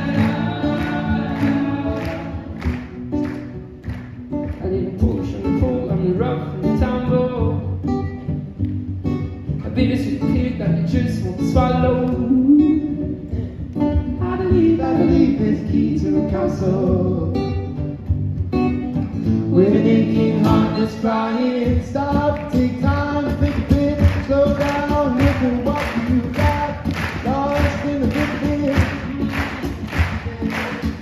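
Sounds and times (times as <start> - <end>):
acoustic guitars strummed: 0.0 - 31.0.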